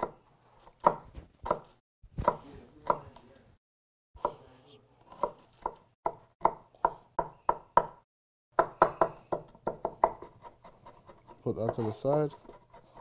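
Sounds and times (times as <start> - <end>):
knife chopping on wooden board: 0.0 - 3.2, 5.1 - 8.0, 8.6 - 13.0.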